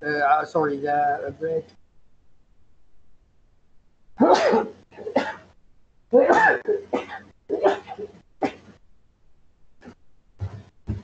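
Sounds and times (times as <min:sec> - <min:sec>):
man coughing: 0:04.2 - 0:05.4, 0:06.2 - 0:08.7.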